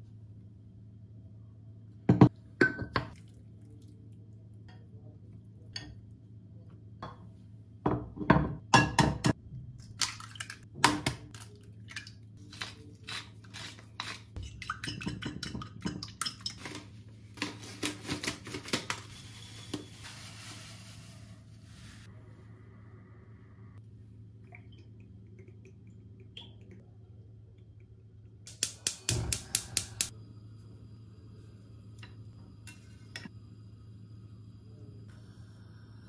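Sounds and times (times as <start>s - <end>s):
eggs beaten in ceramic bowl: 10.0s - 16.7s.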